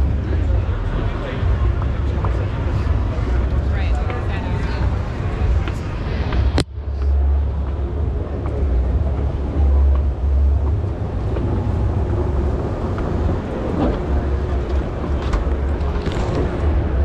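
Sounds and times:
escalator rumble: 0.0s - 17.0s
hall noise: 0.0s - 17.0s.

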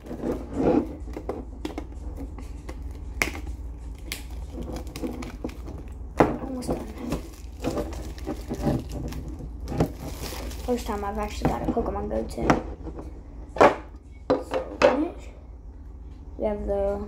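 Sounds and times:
plastic shrink-wrap crinkling: 3.9s - 11.7s.

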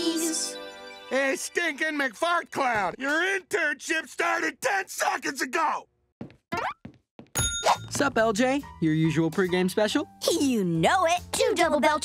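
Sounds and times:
bright bell ding: 7.4s - 8.0s.

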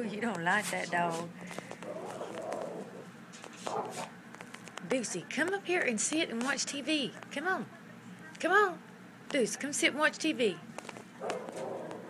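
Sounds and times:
dog growling: 1.8s - 3.1s, 11.2s - 12.0s.

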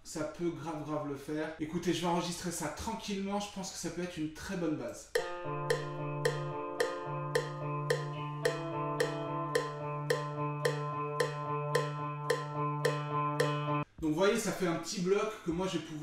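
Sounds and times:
electric guitar picked arpeggio: 5.2s - 13.8s.

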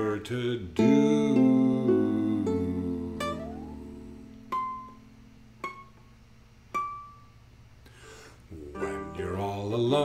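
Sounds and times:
ukulele chord: 0.8s - 6.0s, 6.7s - 7.4s
ukulele single notes picked: 0.8s - 7.4s.

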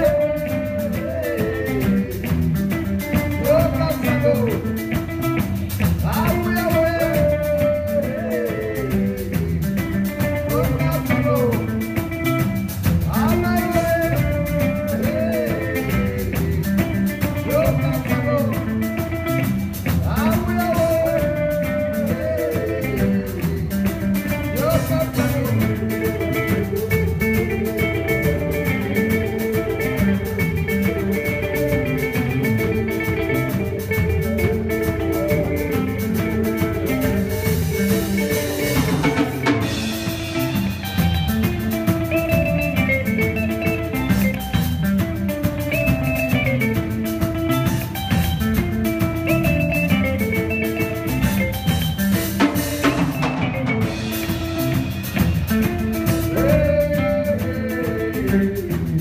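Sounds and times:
drum kit: 0.0s - 59.0s
electric bass: 0.0s - 59.0s
electric guitars: 0.0s - 59.0s.

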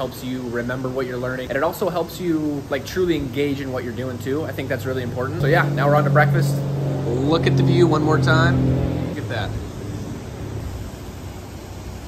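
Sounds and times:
even hiss: 0.0s - 12.0s.

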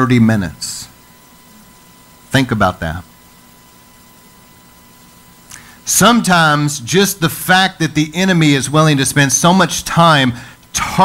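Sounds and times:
background hiss: 0.0s - 11.0s
faint electrical hum: 0.0s - 11.0s.

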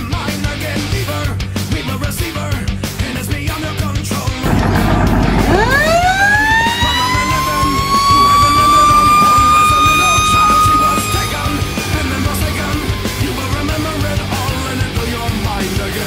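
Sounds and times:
fire engine siren wailing: 4.4s - 16.0s.

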